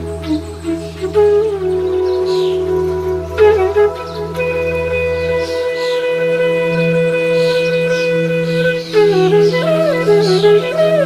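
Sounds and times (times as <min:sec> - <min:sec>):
flute long note: 0:00.0 - 0:11.0
low sustained drone: 0:00.0 - 0:11.0.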